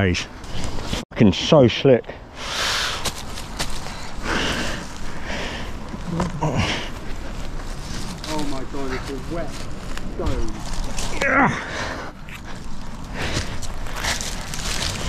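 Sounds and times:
rustling of dry leaves: 2.4 - 15.0.

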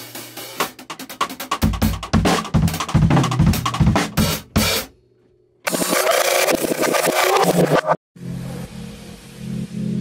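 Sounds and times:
fast drumming with cymbals: 0.0 - 4.9
electronic music with pulsing bass: 5.7 - 10.0.

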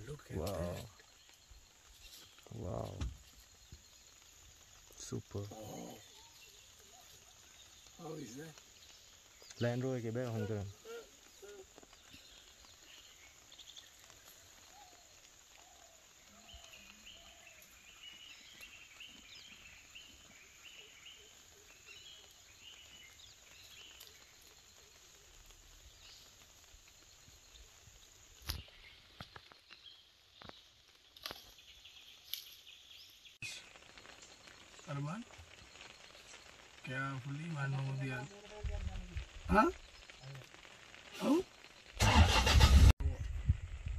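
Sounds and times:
faint bird chirps: 0.0 - 41.9.

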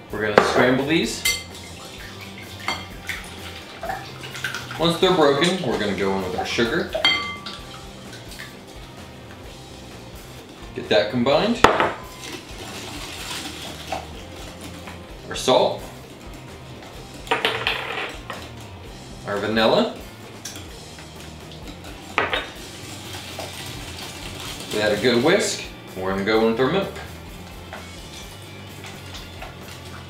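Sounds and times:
whisk clinking glass bowl: 0.5 - 8.2
whisk clinking against glass: 1.2 - 1.6, 2.6 - 3.0, 7.0 - 7.7
whisk beating egg mixture: 12.2 - 15.2, 22.6 - 25.7.

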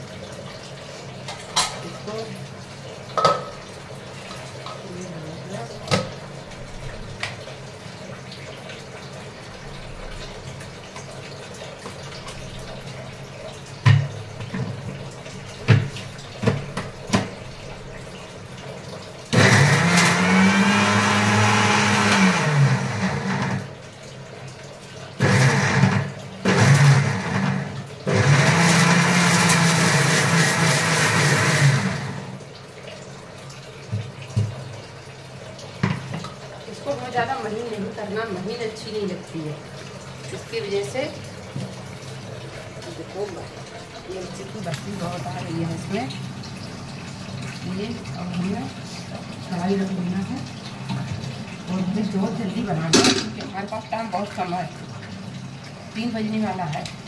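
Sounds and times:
mixer grinder motor running: 19.3 - 23.8, 25.2 - 32.4.

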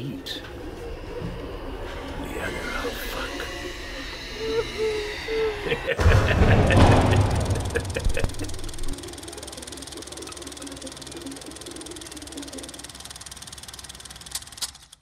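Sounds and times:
steady mechanical drone: 0.0 - 15.0
deep rumble: 6.0 - 9.0.

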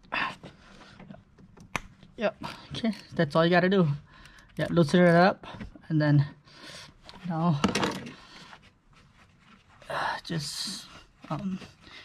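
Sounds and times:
faint handling noise: 7.0 - 9.9.

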